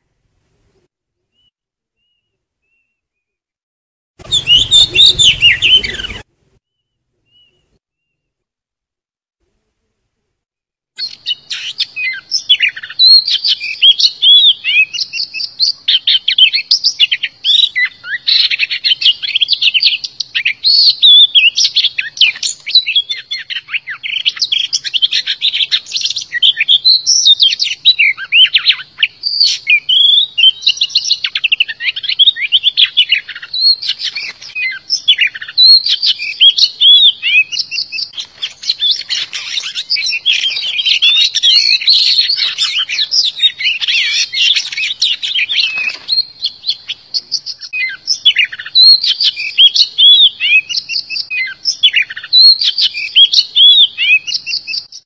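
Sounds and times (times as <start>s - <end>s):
bird singing whistled phrases: 4.2s - 8.3s, 11.0s - 55.0s.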